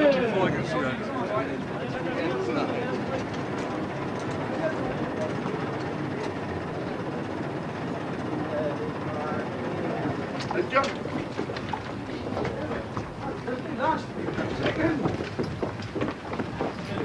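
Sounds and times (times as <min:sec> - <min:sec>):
indistinct talking: 0:00.0 - 0:17.0.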